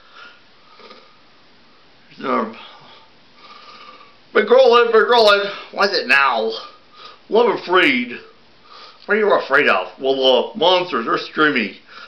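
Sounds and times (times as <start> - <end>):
faint sniff or breath: 0.0 - 1.2, 8.6 - 9.1.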